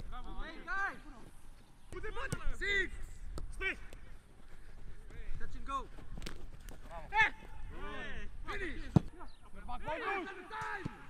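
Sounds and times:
football being kicked: 8.8s - 9.1s.

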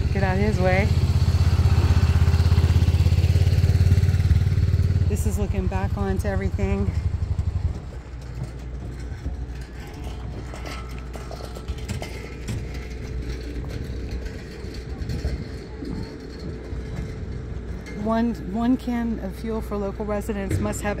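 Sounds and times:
distant voices: 0.0s - 21.0s
vehicle engine running: 0.0s - 21.0s.

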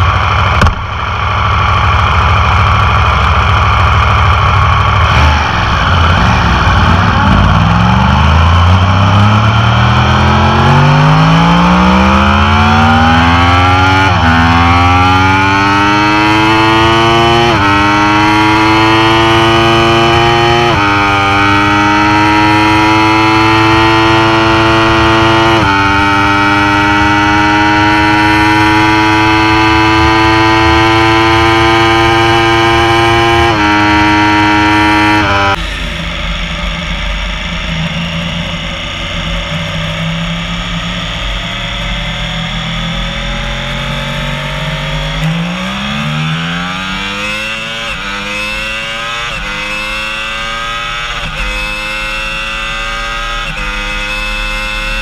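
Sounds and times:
motorcycle engine at full throttle: 0.0s - 55.0s
motorcycle engine revving: 0.0s - 55.0s.

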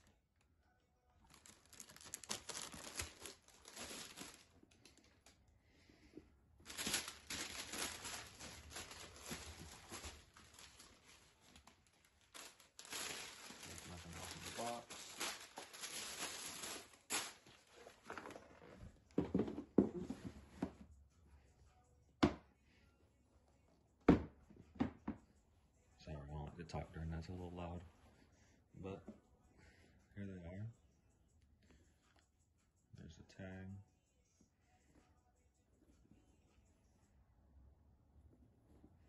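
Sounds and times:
tissue paper crinkling and rustling: 1.2s - 4.6s, 6.6s - 18.8s.

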